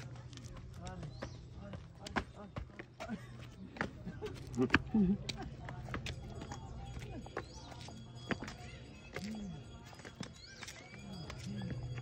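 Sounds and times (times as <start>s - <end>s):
sandal footsteps slapping on stone: 0.0s - 12.0s.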